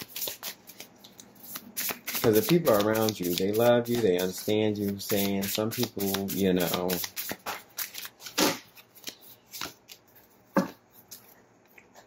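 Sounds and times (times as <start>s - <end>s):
cards being shuffled: 0.0s - 11.4s.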